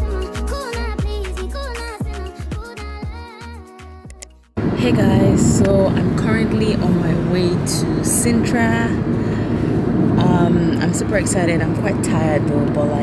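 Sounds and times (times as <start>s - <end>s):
music: 0.0s - 4.6s
car road and engine noise: 4.6s - 13.0s
woman talking: 4.8s - 9.1s, 10.2s - 13.0s.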